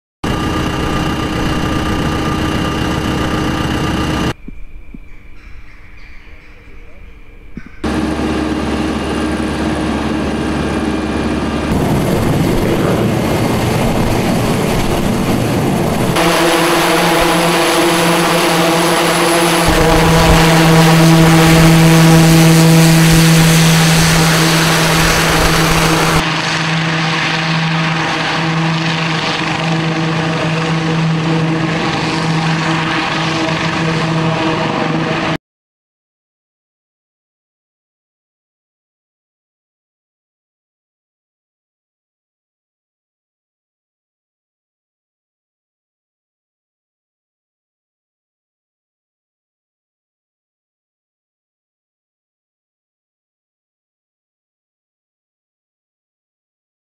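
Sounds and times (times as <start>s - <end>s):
helicopter engines and rotor: 0.2s - 4.4s, 7.8s - 35.4s.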